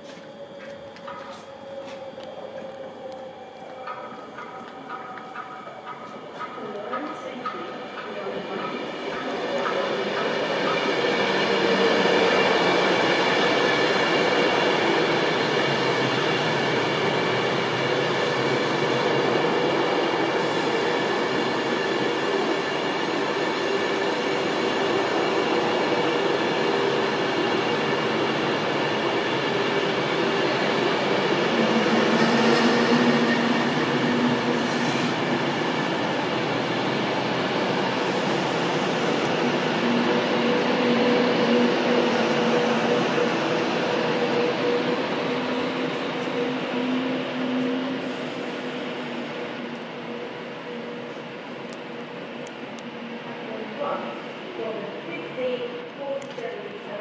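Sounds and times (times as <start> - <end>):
electric train whine: 0.0 - 57.0.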